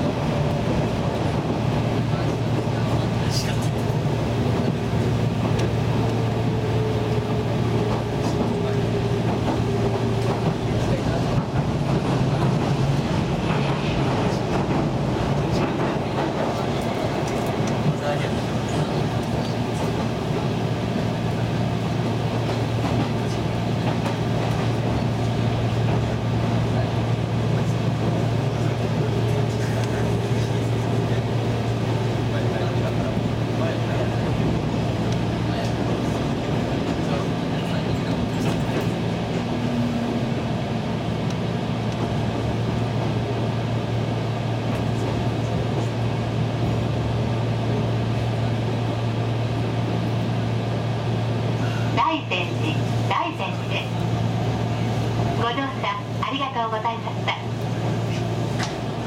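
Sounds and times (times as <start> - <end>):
train low hum: 0.0 - 59.0
wheels rumbling on rails: 0.0 - 59.0.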